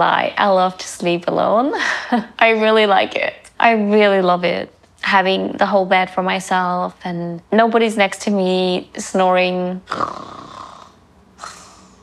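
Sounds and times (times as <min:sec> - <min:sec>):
breathy hiss: 0:09.9 - 0:12.0
woman imitating snoring: 0:09.9 - 0:12.0.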